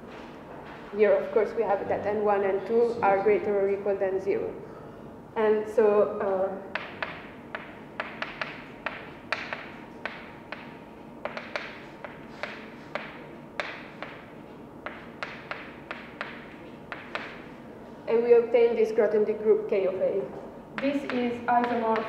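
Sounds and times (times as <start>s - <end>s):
chalk tapping on blackboard: 6.7s - 17.6s, 20.8s - 22.0s.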